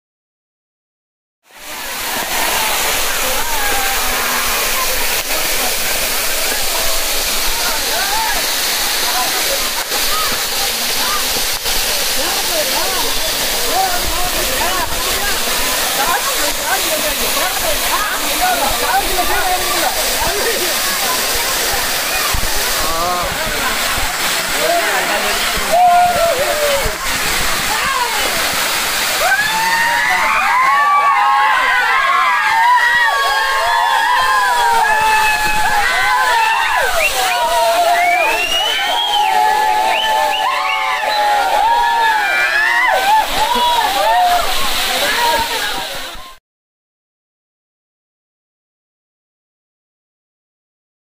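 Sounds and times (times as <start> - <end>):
waterfall rushing: 1.5 - 46.4.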